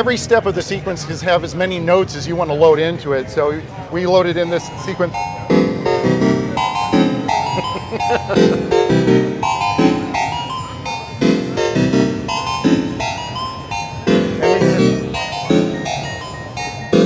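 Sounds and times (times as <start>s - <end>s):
sequenced organ chords and bass: 4.4s - 17.0s.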